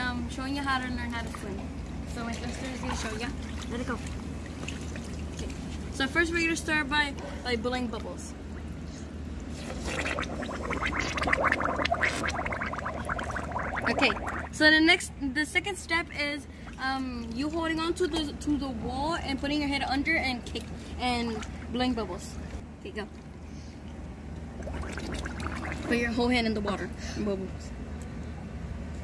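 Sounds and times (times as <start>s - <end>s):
pool water lapping and splashing: 0.0s - 26.6s
steady low hum: 0.0s - 29.0s
child blowing bubbles in water: 9.5s - 14.6s, 24.6s - 26.0s.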